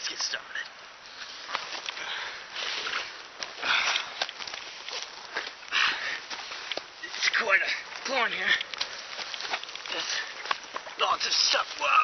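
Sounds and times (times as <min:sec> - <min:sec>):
rustling grass and plants: 0:00.0 - 0:12.0
huffing breaths: 0:01.7 - 0:10.8
small snaps and crackles: 0:03.1 - 0:06.9, 0:07.9 - 0:11.0.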